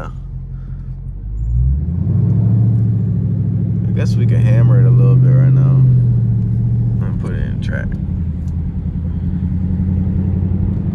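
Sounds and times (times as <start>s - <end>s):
car engine rumble from inside: 0.0s - 10.9s.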